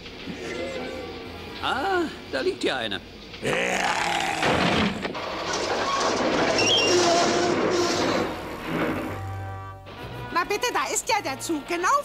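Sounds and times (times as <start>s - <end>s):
monster grunt: 3.4s - 4.6s
monster roar: 3.4s - 5.0s.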